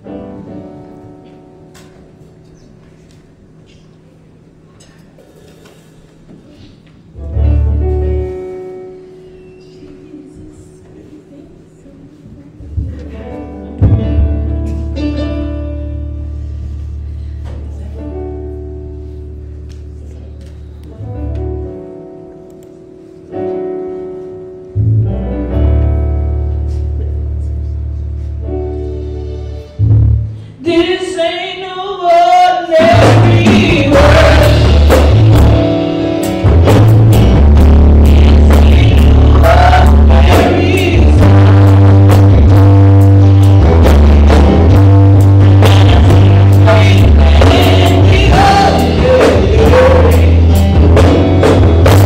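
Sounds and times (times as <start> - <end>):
deep bass: 12.6 - 21.7, 24.8 - 30.4, 32.9 - 52.0
choir singing gospel: 30.7 - 35.8, 37.9 - 42.5, 45.2 - 52.0
drum kit beat: 32.6 - 52.0
electronic keyboard chords: 32.7 - 52.0.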